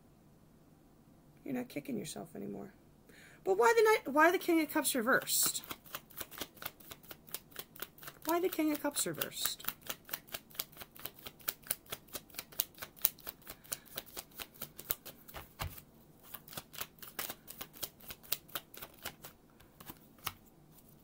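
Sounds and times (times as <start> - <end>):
cards being shuffled: 5.1 - 21.0.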